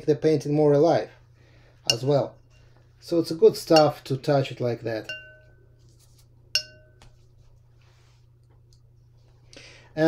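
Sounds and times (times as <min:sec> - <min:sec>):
paintbrush clinking against container: 0:01.9 - 0:02.7, 0:03.7 - 0:04.2, 0:05.0 - 0:05.6, 0:06.6 - 0:07.1.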